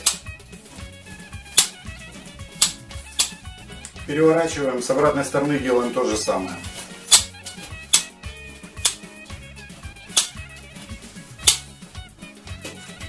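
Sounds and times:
quiet background music: 0.0 - 13.0
meat tenderizer clicks: 11.4 - 11.7.

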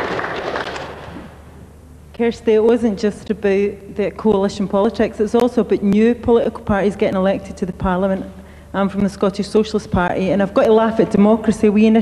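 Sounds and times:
audience applause: 0.0 - 1.1.

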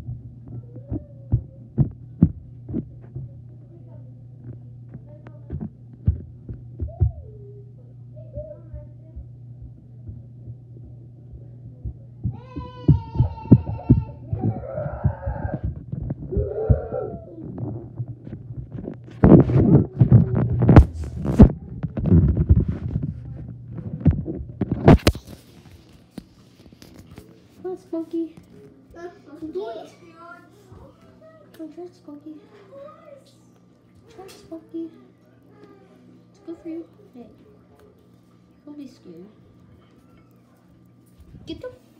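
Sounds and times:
microphone handling thumps and rubbing: 0.0 - 3.6, 4.4 - 7.3, 8.4 - 27.1
low hum: 0.0 - 25.7
muffled voices: 0.0 - 25.9.

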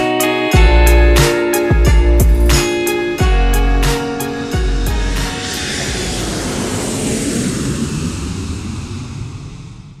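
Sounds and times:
rushing whoosh with low rumble: 2.0 - 10.0.

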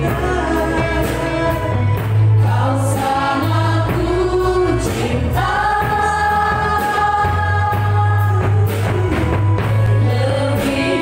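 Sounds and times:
group singing worship song: 0.0 - 11.0
keyboard drums bass and guitar: 0.0 - 11.0.

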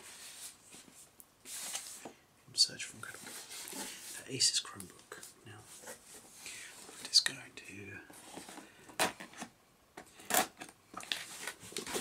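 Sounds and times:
man whispering: 2.5 - 3.3, 4.1 - 5.8, 6.8 - 8.1.

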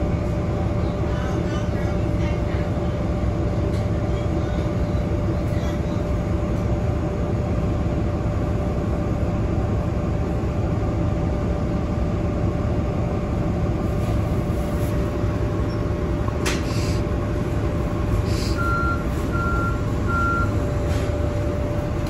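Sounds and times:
bus engine and road rumble: 0.0 - 22.0
constant high hum: 0.0 - 22.0.

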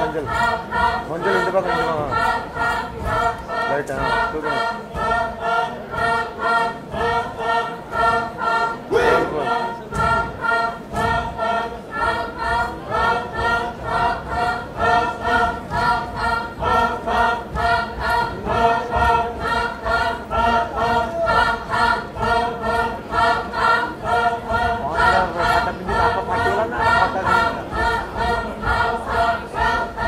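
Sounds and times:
group chanting in unison: 0.0 - 30.0.

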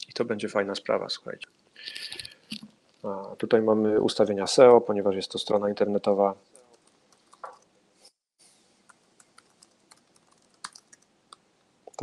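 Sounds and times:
computer keyboard keystrokes: 9.3 - 11.0.

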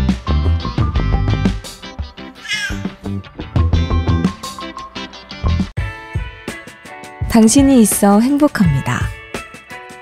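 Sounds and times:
background music: 0.0 - 10.0
cat meowing: 2.4 - 2.8.

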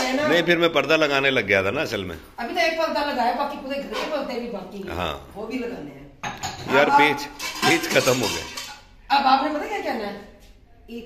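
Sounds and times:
dishes and cutlery clattering: 6.2 - 8.9.

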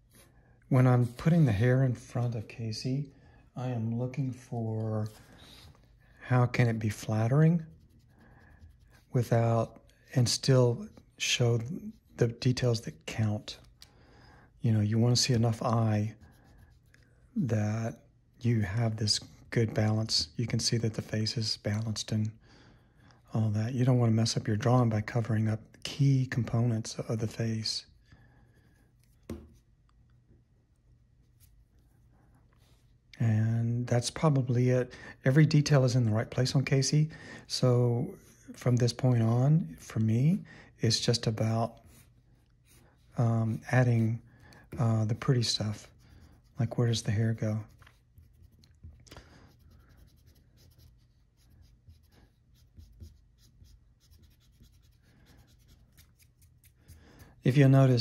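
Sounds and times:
pencil scratching on paper: 5.0 - 11.1, 14.8 - 17.2, 41.8 - 57.3
short sharp tap: 29.3 - 29.6.

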